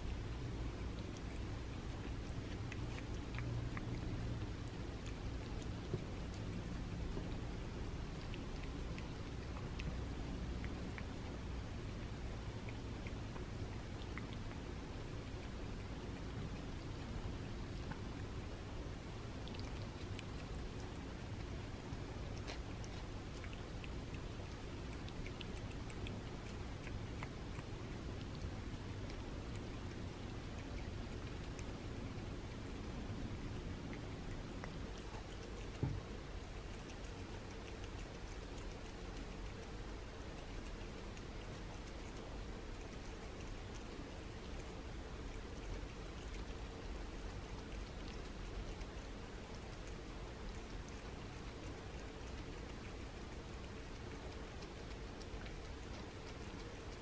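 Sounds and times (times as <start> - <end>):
cat licking and lapping: 0.0 - 57.0
low room hum: 0.0 - 57.0.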